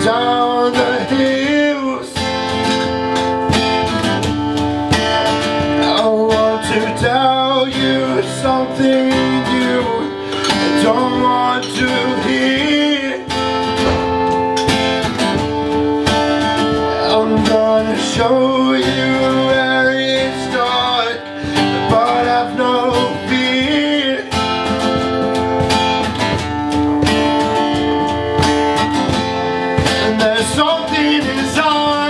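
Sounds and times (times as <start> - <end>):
man singing: 0.0 - 2.8, 5.8 - 14.3, 16.8 - 25.1, 29.8 - 32.0
acoustic guitar strumming: 0.0 - 32.0.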